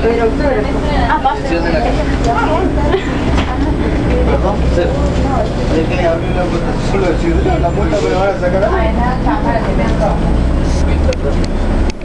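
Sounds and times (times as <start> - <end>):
trolleybus low rumble: 0.0 - 12.0.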